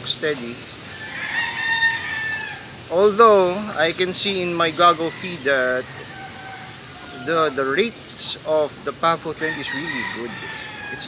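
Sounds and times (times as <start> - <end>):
rooster crowing: 0.9 - 2.8, 4.6 - 7.8, 9.3 - 11.0.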